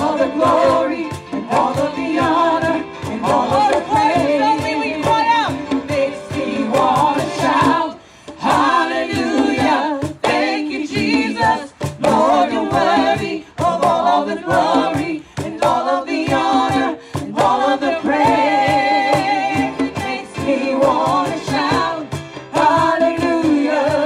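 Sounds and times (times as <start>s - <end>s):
hand drums beating: 0.0s - 24.0s
women singing together: 0.0s - 24.0s.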